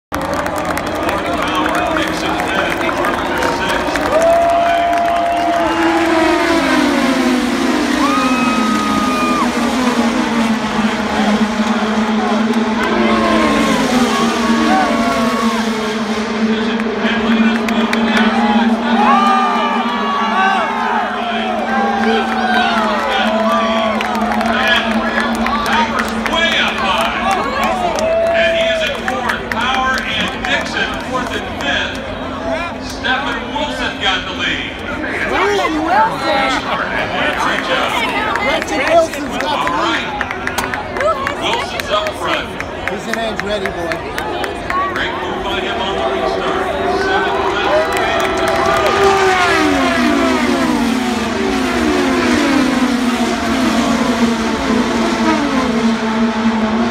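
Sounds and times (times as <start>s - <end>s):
crowd noise: 0.0s - 56.9s
race car engines droning: 0.1s - 56.9s
announcer over loudspeaker: 1.0s - 30.8s, 44.8s - 56.9s.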